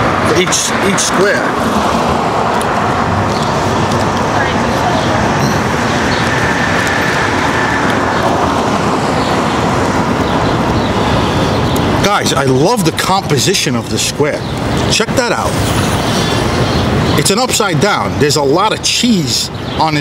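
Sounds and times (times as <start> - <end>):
cars driving past: 0.0 - 13.2
city street traffic: 0.0 - 20.0.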